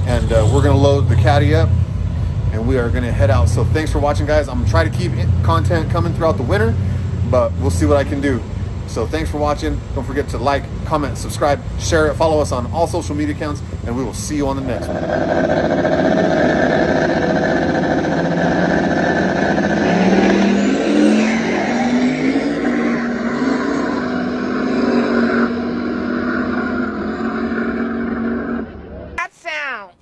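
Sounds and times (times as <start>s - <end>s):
drag-race car engine at full throttle: 0.0s - 29.2s.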